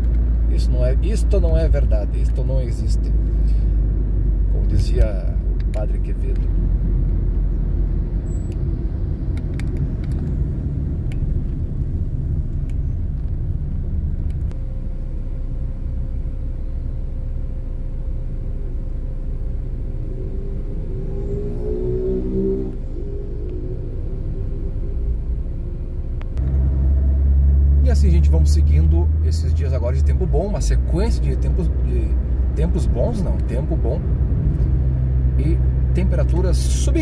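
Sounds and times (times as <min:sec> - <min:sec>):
car road and engine rumble: 0:00.0 - 0:37.0
faint wavering hum: 0:07.5 - 0:26.6.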